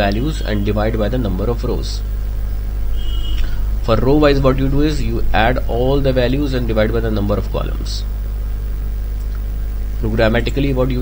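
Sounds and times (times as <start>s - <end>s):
man speaking: 0.0s - 2.1s, 3.8s - 8.1s, 10.0s - 11.0s
steady low hum: 0.0s - 11.0s.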